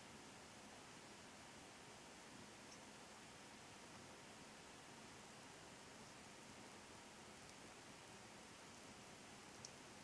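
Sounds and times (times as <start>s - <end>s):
faint room hiss: 0.0s - 10.0s
faint ticks: 2.6s - 2.9s, 7.3s - 7.8s, 8.6s - 10.0s.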